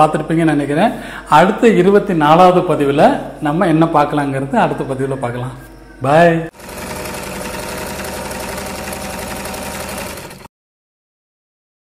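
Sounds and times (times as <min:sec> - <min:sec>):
machine rattling: 0:06.6 - 0:10.5.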